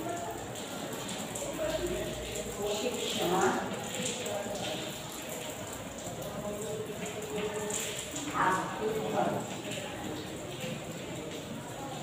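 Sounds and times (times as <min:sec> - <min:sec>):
voices in background: 0:00.0 - 0:12.0.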